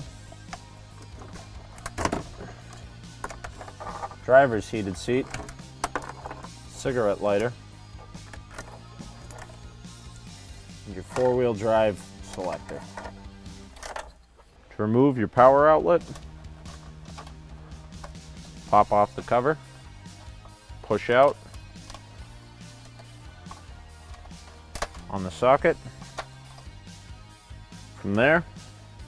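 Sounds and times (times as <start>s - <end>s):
soft background music: 0.0s - 29.0s.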